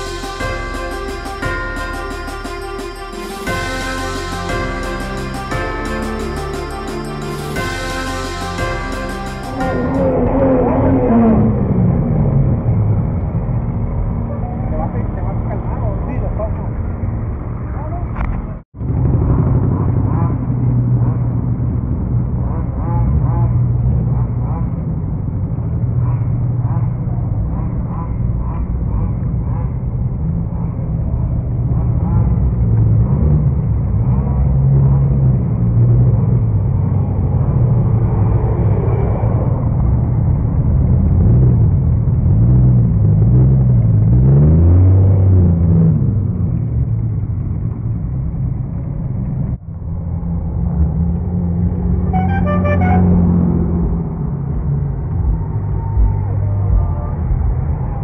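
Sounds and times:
truck engines running: 0.0 - 58.0
voices: 55.3 - 58.0.

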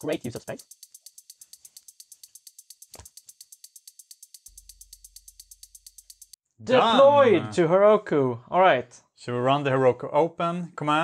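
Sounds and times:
fast high ticking: 0.0 - 6.4.

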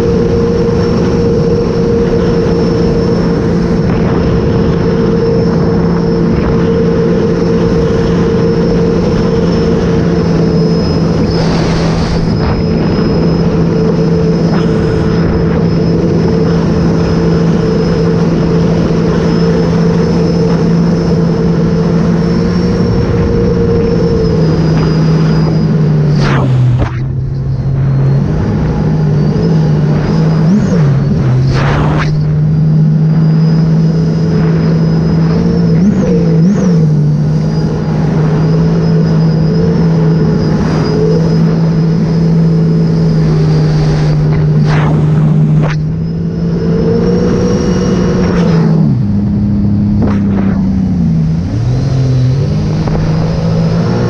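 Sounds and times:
personal watercraft engine: 0.0 - 54.0.

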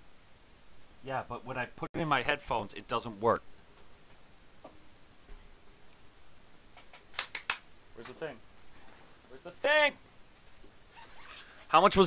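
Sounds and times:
sharp clicks and taps: 6.7 - 8.2.

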